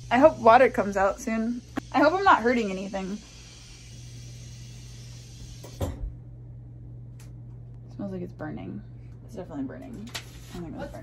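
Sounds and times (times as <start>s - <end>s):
air hissing from water pipes: 0.0s - 6.0s
low hum: 0.0s - 10.2s.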